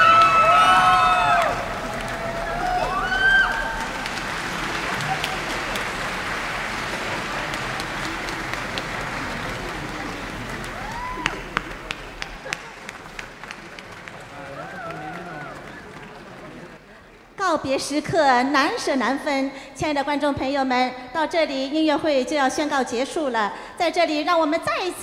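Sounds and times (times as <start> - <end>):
audience applauding: 0.0 - 17.2.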